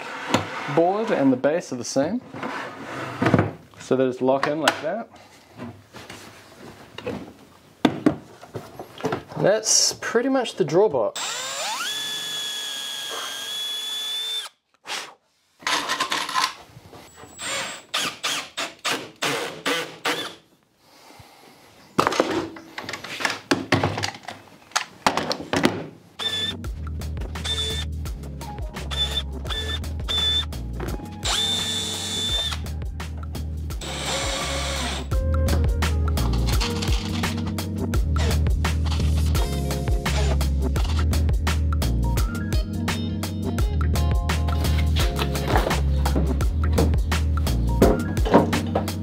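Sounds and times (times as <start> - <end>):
cordless drill driving screws: 11.2 - 14.6, 17.3 - 20.4, 26.2 - 26.6, 27.4 - 27.9, 28.9 - 30.5, 31.2 - 32.6, 33.8 - 35.1
clicks and knocks of parts: 15.6 - 16.6, 22.0 - 25.8
background music with low beat: 26.5 - 49.0.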